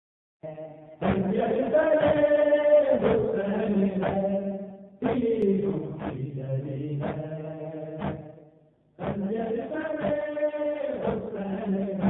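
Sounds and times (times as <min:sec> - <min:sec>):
man chanting a lament: 0:00.4 - 0:08.3, 0:09.0 - 0:12.0.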